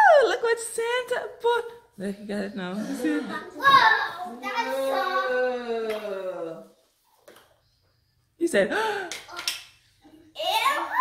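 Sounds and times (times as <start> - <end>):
child's excited voice: 3.6 - 5.4, 10.4 - 11.0.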